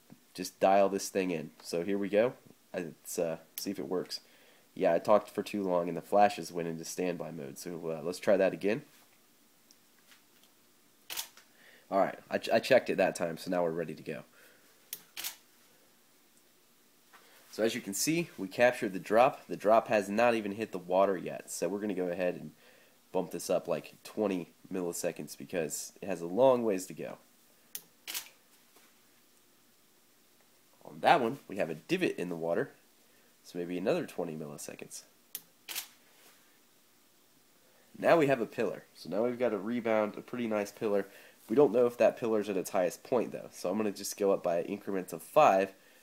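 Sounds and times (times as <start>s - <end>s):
camera shutter firing: 11.1s - 11.4s, 15.2s - 15.4s, 28.0s - 28.3s, 35.7s - 35.9s.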